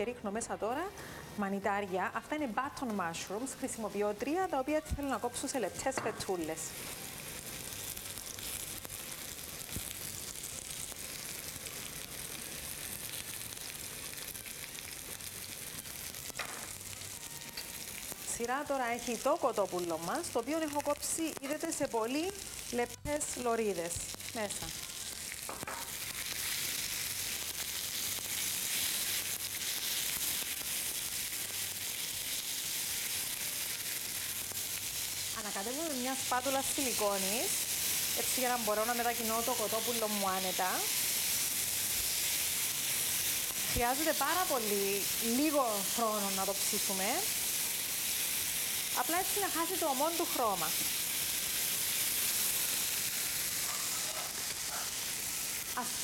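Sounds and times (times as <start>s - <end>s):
food sizzling in a frying pan: 0.0s - 56.0s.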